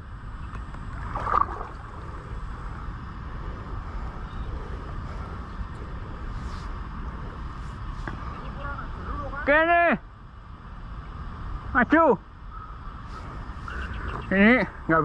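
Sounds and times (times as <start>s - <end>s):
river water flowing: 0.5s - 4.1s.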